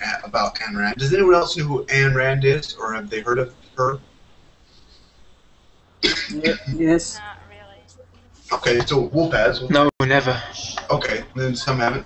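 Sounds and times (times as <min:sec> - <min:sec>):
person speaking over a call: 0:00.0 - 0:04.0, 0:06.0 - 0:12.0
person coughing: 0:06.0 - 0:06.8.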